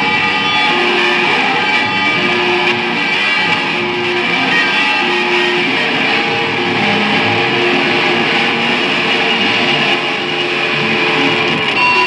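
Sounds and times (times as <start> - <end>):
distorted electric guitars droning: 0.0 - 12.0.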